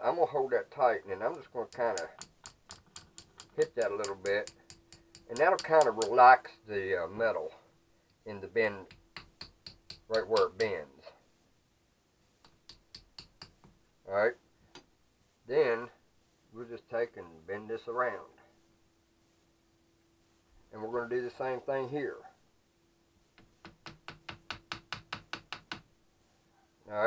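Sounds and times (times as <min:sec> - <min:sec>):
small hammer tapping sheet metal: 0:01.3 - 0:06.2, 0:08.6 - 0:10.8, 0:12.4 - 0:13.7, 0:23.4 - 0:25.9.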